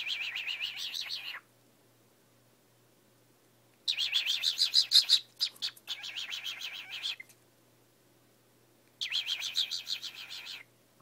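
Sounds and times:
cockatiel chirping rapidly: 0.0s - 1.4s, 3.9s - 7.2s, 9.0s - 10.6s.

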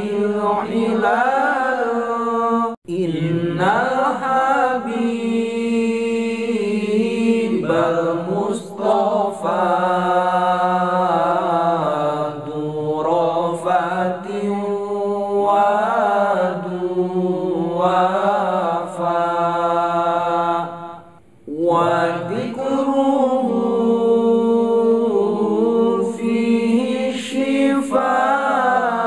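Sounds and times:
men singing a cappella: 0.0s - 29.0s.

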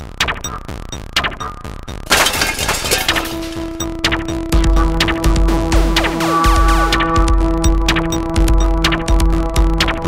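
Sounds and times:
background music with a beat: 0.0s - 2.1s, 3.3s - 10.0s
loud crash: 2.1s - 3.7s.

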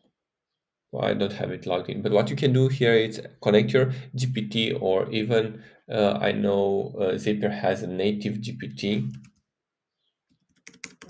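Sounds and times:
computer keyboard keystrokes: 10.5s - 11.0s.

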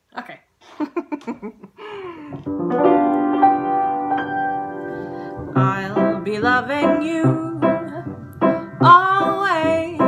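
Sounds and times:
piano chords: 2.3s - 10.0s.

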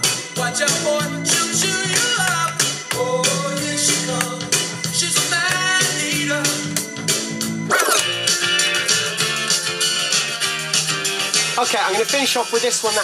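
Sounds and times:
pop music from dj decks: 0.0s - 13.0s.

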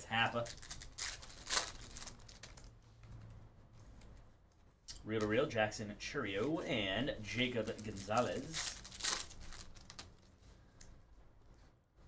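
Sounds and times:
low room hum: 0.0s - 12.0s
trading cards clicking and rustling: 7.3s - 10.2s.

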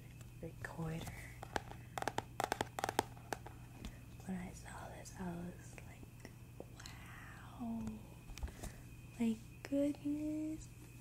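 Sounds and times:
fingernails tapping on box: 1.4s - 3.5s.

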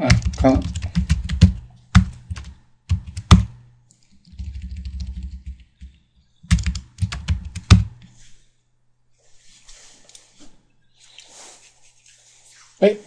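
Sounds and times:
typing on computer keyboard: 0.0s - 3.6s, 4.2s - 8.0s.

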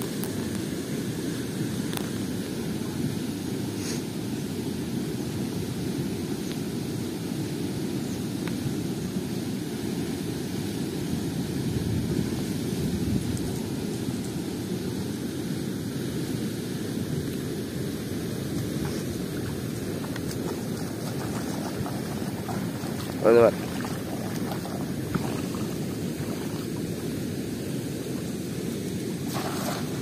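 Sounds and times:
water rushing through sluice gate: 18.5s - 30.0s.

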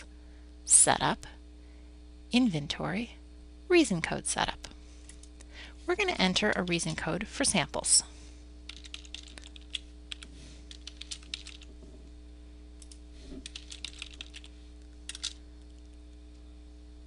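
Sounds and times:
steady low hum: 0.0s - 17.0s
computer keyboard typing: 8.7s - 11.7s, 12.8s - 14.5s, 15.1s - 15.4s.

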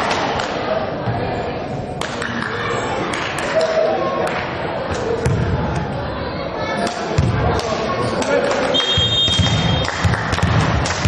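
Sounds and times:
volleyball bouncing on floor: 9.0s - 11.0s.

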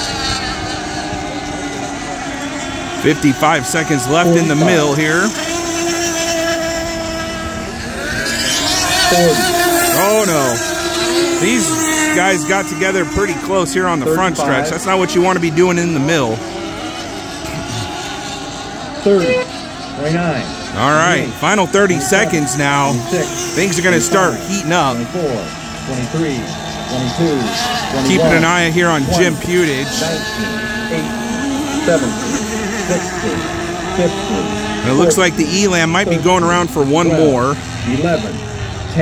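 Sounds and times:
model boat engines whining: 0.0s - 39.0s.

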